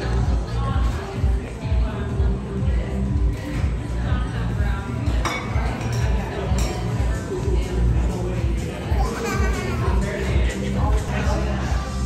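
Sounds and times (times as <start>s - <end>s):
background music with bass beat: 0.0s - 12.0s
diners chatting: 0.0s - 12.0s
dishware clinking: 5.1s - 7.0s.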